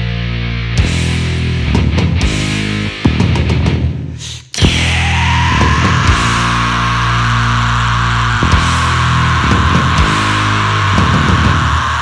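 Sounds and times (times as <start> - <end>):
drum hits: 3.0 - 3.9.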